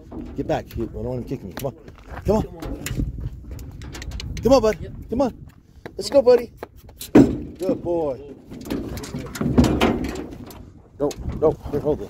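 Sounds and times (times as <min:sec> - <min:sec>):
metal panels rattling: 0:00.0 - 0:01.5, 0:07.0 - 0:11.6
hooves on steel trailer floor: 0:00.0 - 0:12.0.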